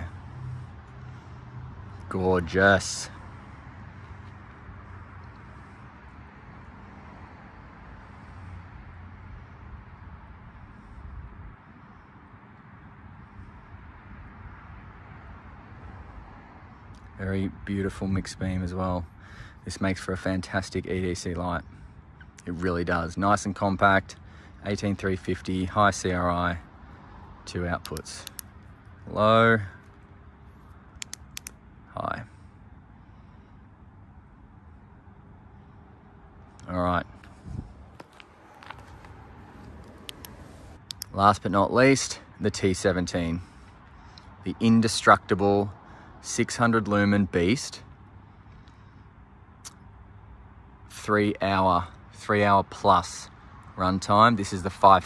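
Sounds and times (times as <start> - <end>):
flashlight switch clicking: 27.8 - 28.5, 31.0 - 31.6, 40.1 - 41.1.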